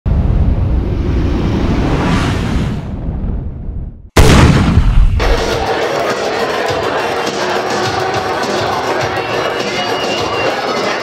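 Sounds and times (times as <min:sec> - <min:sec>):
low rumble: 0:00.1 - 0:05.6
deep boom: 0:00.1 - 0:05.7
crowd noise: 0:05.2 - 0:11.0
music: 0:05.2 - 0:11.0.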